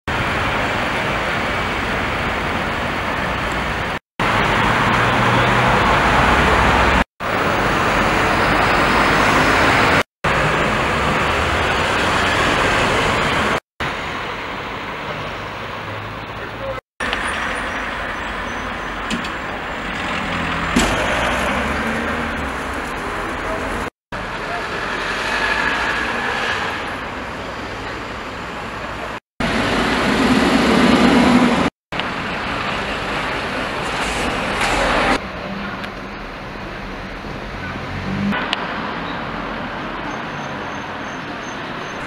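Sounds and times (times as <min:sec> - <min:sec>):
road traffic noise: 0:00.0 - 0:42.0.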